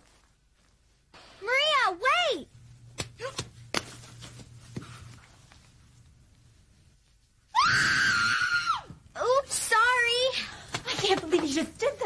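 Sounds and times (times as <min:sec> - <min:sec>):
woman screaming: 0:07.5 - 0:08.9.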